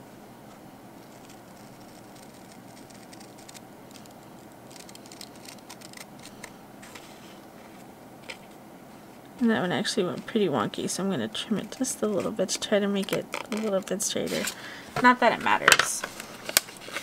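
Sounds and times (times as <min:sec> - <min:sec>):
scissors snipping paper: 0:01.0 - 0:06.5.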